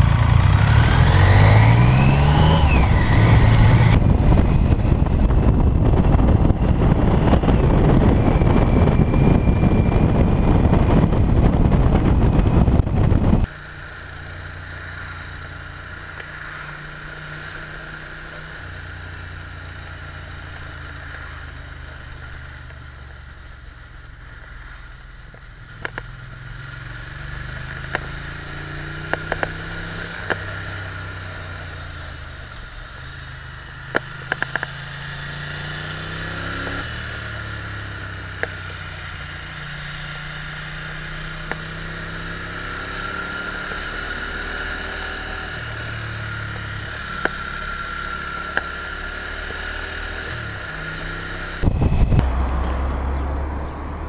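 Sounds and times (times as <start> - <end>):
wind noise at speed: 0.0 - 13.6, 26.8 - 54.0
motorcycle engine accelerating: 0.0 - 54.0
motorcycle engine humming: 0.0 - 54.0.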